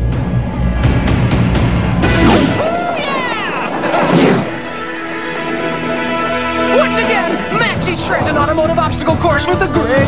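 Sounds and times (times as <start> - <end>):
music with held chords: 0.0 - 3.8, 4.5 - 10.0
high falling cartoon cries: 2.5 - 4.7.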